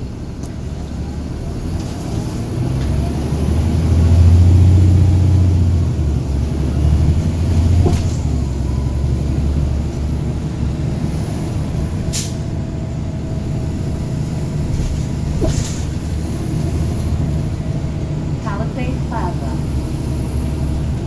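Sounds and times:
bus diesel engine drone: 0.0 - 21.0.

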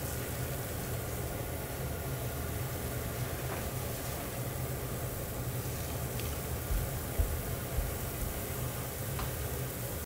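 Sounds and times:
pot boiling with bubbling rumble: 0.0 - 10.0.

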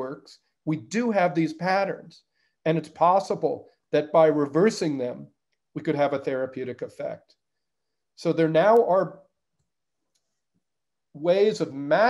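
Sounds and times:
man speaking: 0.0 - 7.3, 8.2 - 9.3, 11.2 - 12.0.

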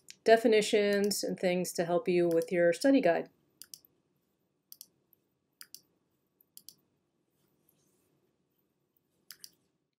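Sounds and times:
faint computer mouse clicks: 3.6 - 3.9, 4.7 - 5.0, 5.6 - 6.8, 9.3 - 9.6.

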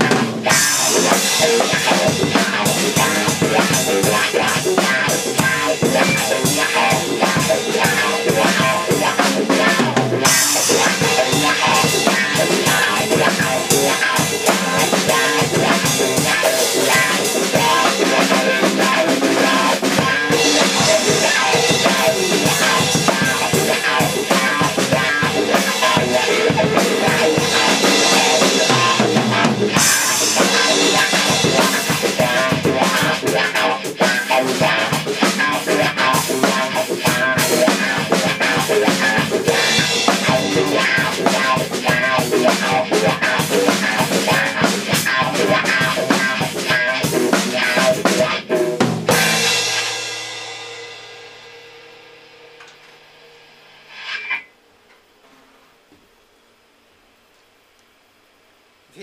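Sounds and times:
amplified guitar: 0.0 - 51.6, 52.6 - 54.5
drum kit played hard: 0.0 - 54.5.

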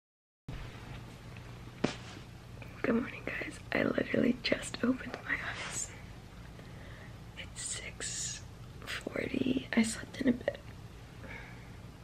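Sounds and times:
woman speaking sleepily: 2.8 - 6.0, 7.4 - 10.7.

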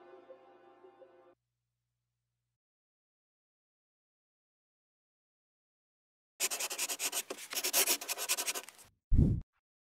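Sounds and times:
brush scratching over paper: 6.4 - 8.8.

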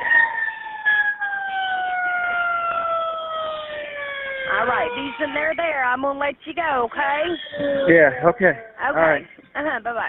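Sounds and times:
emergency vehicle siren over phone: 0.0 - 6.1.

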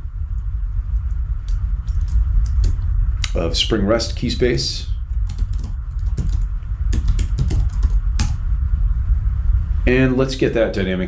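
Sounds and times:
steady low hum: 0.0 - 11.0
typing on computer keyboard: 5.2 - 8.4.

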